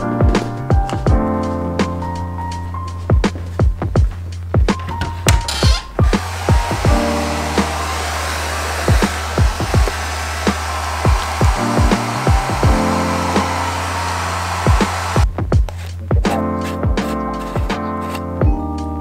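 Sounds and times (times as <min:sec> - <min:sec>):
background music with beat: 0:00.0 - 0:19.0
hair dryer blowing: 0:06.0 - 0:15.3.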